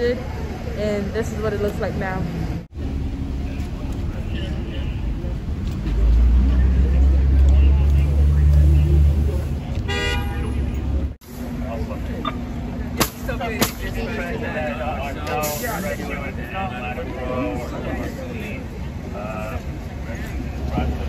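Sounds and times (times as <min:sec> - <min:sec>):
low traffic rumble: 0:00.0 - 0:21.0
short car horn toot: 0:09.9 - 0:10.6.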